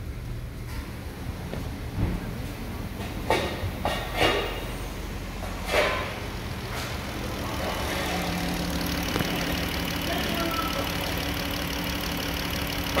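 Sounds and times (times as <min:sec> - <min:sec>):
car engine idling: 0:01.0 - 0:13.0.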